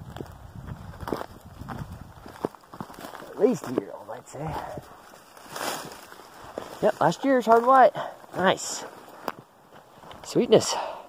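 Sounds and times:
footsteps crunching on rocky ground: 0.0s - 10.6s.

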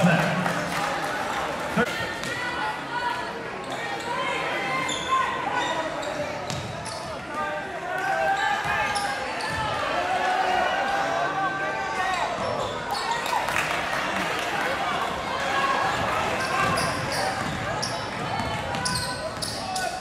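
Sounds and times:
crowd and player voices: 0.0s - 20.0s
basketball bouncing on court: 6.5s - 6.8s, 16.4s - 19.8s.

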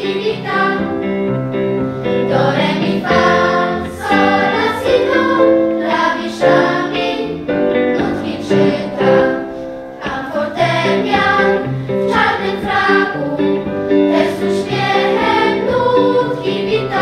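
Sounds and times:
children's choir singing: 0.0s - 1.1s, 2.1s - 17.0s
low accompanying notes: 0.0s - 17.0s.

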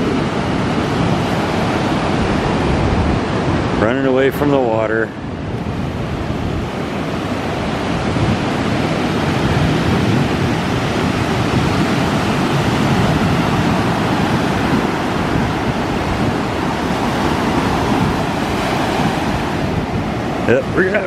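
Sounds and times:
ocean surf breaking: 0.0s - 21.0s.

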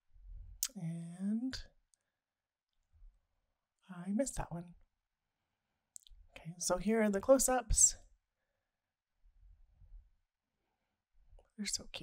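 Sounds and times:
woman speaking: 0.6s - 1.7s, 3.9s - 4.7s, 6.4s - 8.0s.

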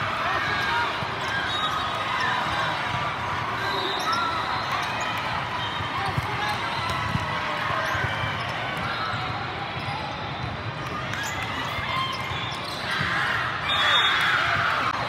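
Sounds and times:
shouting and cheering: 0.0s - 15.0s.

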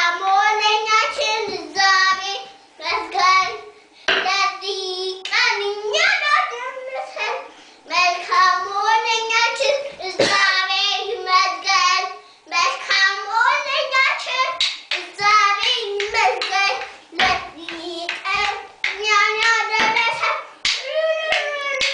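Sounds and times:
child singing: 0.0s - 21.9s.

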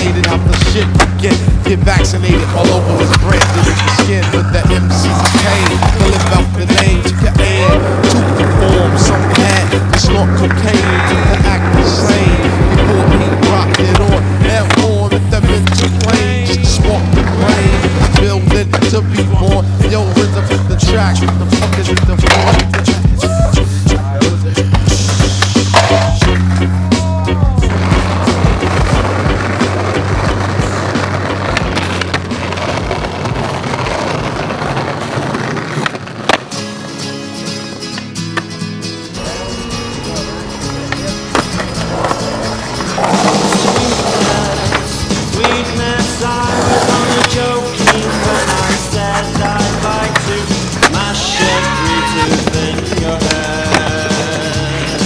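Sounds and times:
music with steady beat: 0.0s - 33.0s, 36.6s - 55.0s
skateboard clacks: 0.0s - 38.6s, 40.1s - 55.0s
skateboard wheels rolling on concrete: 0.0s - 55.0s.

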